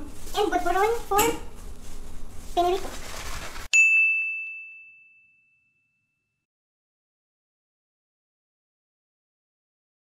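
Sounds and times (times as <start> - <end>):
high bell-like ding: 3.7 - 6.4.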